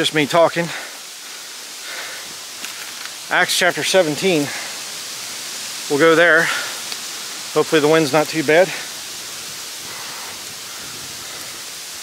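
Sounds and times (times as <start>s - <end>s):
wind hissing: 0.0s - 12.0s.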